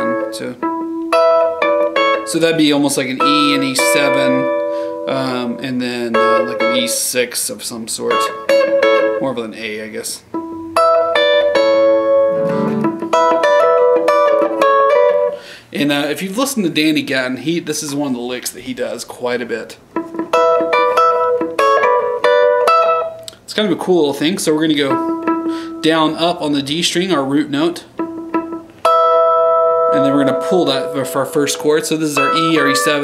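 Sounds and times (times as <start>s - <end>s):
electric guitar lick: 0.0s - 7.1s, 8.1s - 9.2s, 10.2s - 15.7s, 19.8s - 23.5s, 24.4s - 26.6s, 27.8s - 33.0s.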